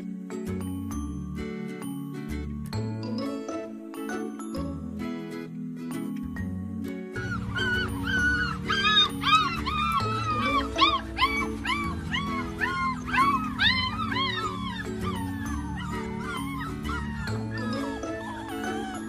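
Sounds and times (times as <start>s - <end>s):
background music: 0.0s - 19.0s
puppy whining and yelping: 7.2s - 19.0s.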